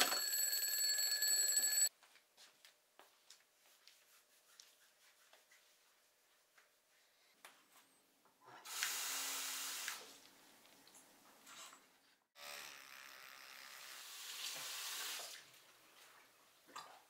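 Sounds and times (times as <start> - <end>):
tap water running: 14.0 - 15.6.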